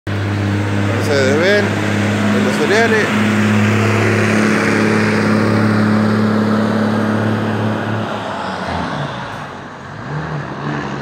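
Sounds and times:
truck diesel engine running: 0.1s - 10.4s.

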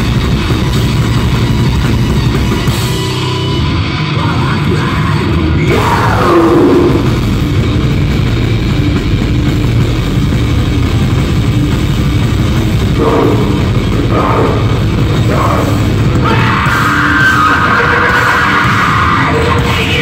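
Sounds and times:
punk band playing: 0.0s - 20.0s
shouted vocal: 4.2s - 7.2s, 13.0s - 20.0s.

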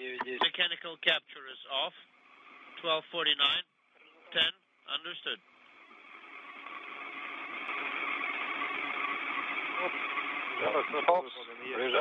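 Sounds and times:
radio link hiss: 0.0s - 12.0s.

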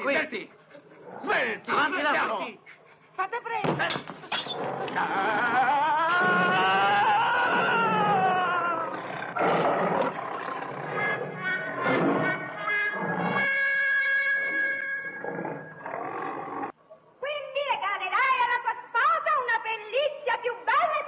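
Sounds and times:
lion growling and roaring: 4.5s - 13.5s, 14.4s - 16.8s
steady held musical tones: 10.7s - 15.9s.

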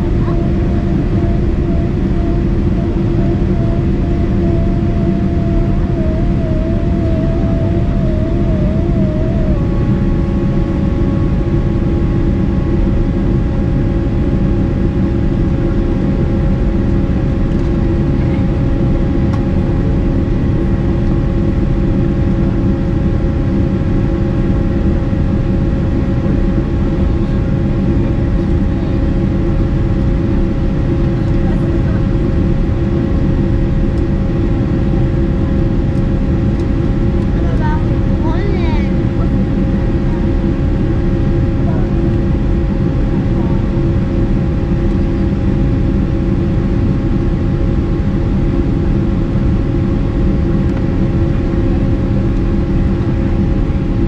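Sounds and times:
jet engines droning: 0.0s - 54.0s
steady whining tones: 0.0s - 54.0s.

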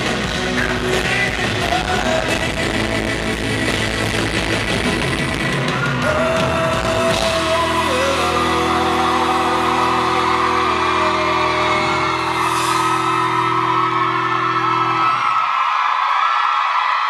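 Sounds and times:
live band's held chord: 0.0s - 15.5s
crowd screaming and cheering: 0.0s - 17.0s.

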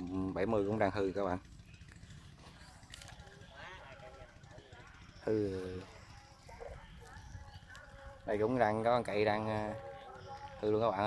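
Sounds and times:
distant talking: 0.0s - 11.0s.

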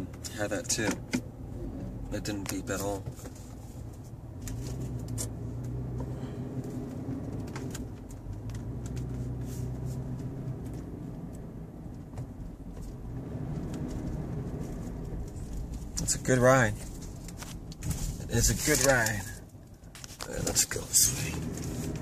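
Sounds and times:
car engine and road hum: 0.0s - 22.0s.

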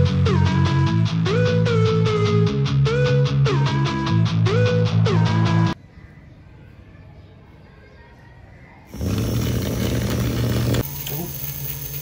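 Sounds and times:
toy motor fan whirring: 8.9s - 12.0s.

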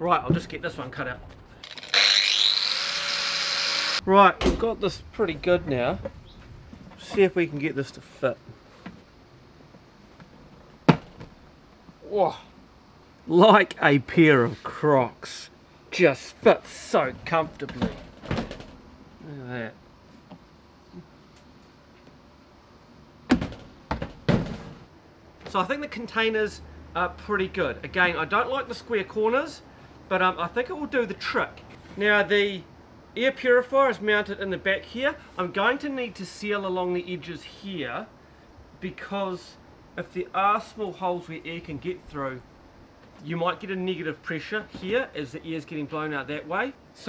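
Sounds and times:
angle grinder cutting plastic: 1.6s - 4.0s.

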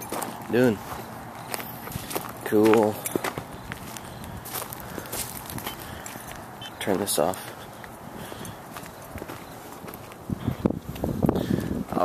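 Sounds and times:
faint background noise: 0.0s - 12.0s
footsteps on hard ground: 0.0s - 12.0s.

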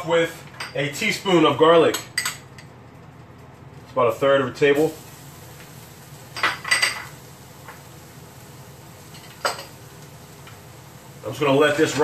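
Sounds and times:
kitchenware clinking: 0.5s - 1.1s, 1.8s - 2.7s, 6.3s - 7.2s, 9.1s - 9.8s.

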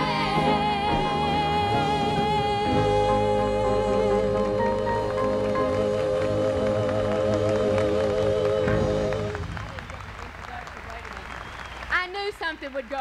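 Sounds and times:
live band holding chord: 0.0s - 10.2s
audience applause: 4.3s - 13.0s.

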